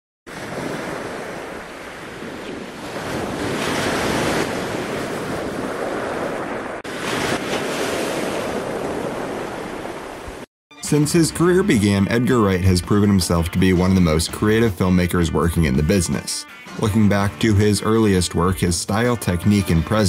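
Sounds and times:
ocean surf: 0:00.3 - 0:11.6
wind rushing over microphone: 0:00.4 - 0:10.5.

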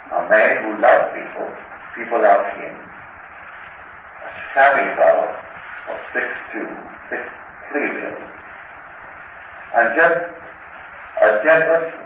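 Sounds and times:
background hiss: 0:00.0 - 0:12.0
man lecturing: 0:00.1 - 0:02.9, 0:04.2 - 0:08.4, 0:09.8 - 0:10.5, 0:11.2 - 0:12.0.

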